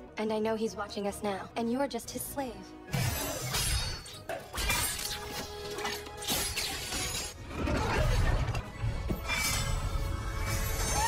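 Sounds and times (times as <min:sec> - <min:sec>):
film music score: 0:00.0 - 0:11.0
glass shattering: 0:03.0 - 0:07.4.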